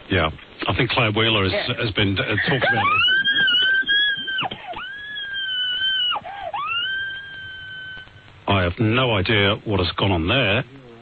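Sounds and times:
person screaming over phone: 0:02.6 - 0:08.1.

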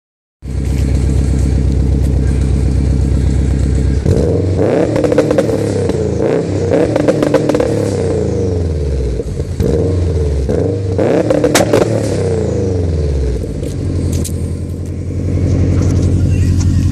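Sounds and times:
exhaust popping and crackling: 0:00.4 - 0:16.9
car engine on rev limiter: 0:00.5 - 0:16.9.

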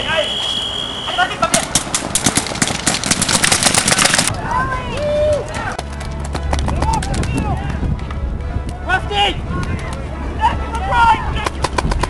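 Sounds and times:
players shouting: 0:03.8 - 0:05.9, 0:08.8 - 0:11.8.

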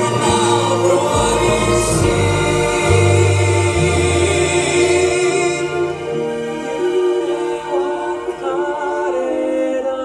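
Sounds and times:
live backing band: 0:00.0 - 0:10.0
male voices singing in harmony: 0:00.0 - 0:10.0.

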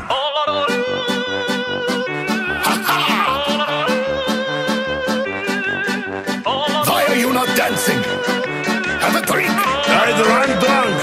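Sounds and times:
hardstyle dance music: 0:00.0 - 0:11.0.

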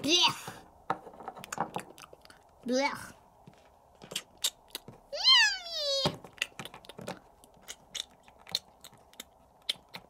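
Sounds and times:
person imitating cat meow: 0:05.1 - 0:06.2.

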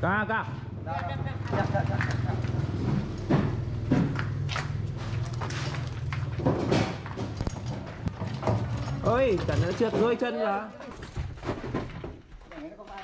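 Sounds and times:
wood and wheels knocking and scraping: 0:01.4 - 0:13.0.

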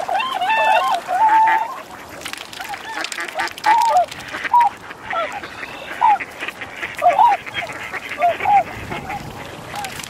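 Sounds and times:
swans honking: 0:00.0 - 0:10.0.

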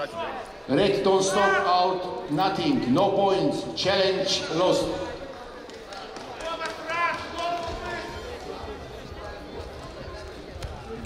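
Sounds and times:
people shouting in a sports hall: 0:00.0 - 0:02.2, 0:06.3 - 0:08.4.

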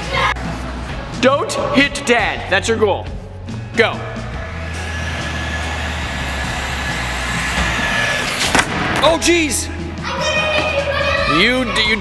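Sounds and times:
background music: 0:00.0 - 0:12.0
toy car motor whine: 0:04.5 - 0:08.5.

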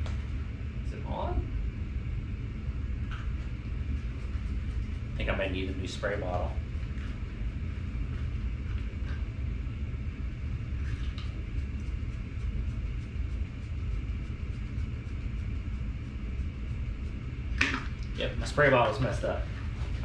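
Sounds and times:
steady low rumble: 0:00.0 - 0:20.0.

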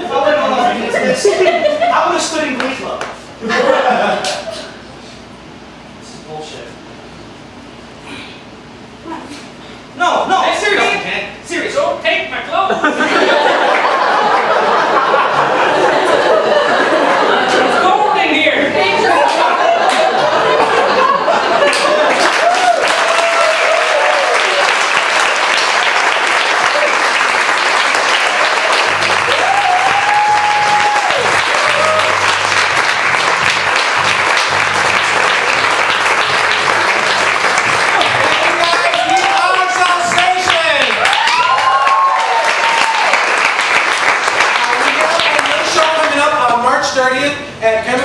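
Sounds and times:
audience applauding and cheering: 0:19.1 - 0:46.2
whoops: 0:22.2 - 0:24.7, 0:28.3 - 0:32.4, 0:41.0 - 0:43.3.

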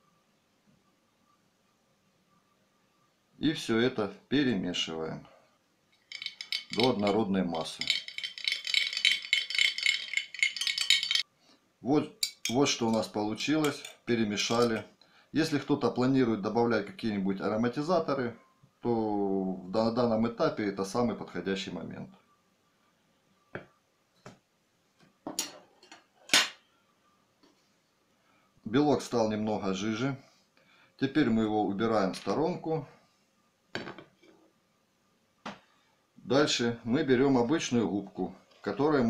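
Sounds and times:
utensil beating in glass dish: 0:06.0 - 0:11.2, 0:12.2 - 0:14.9.

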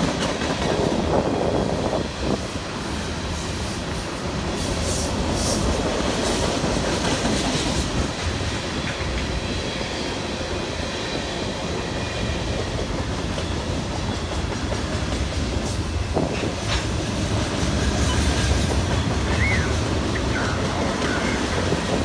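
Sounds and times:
freight cars rolling on rails: 0:00.0 - 0:22.0.

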